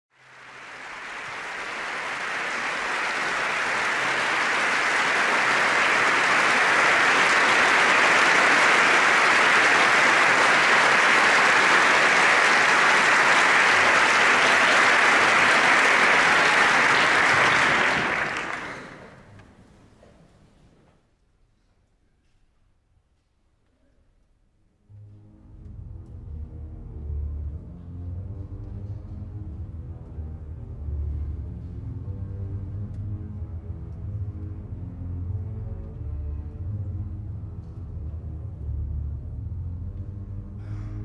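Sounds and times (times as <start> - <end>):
audience applauding: 0.1 - 19.5.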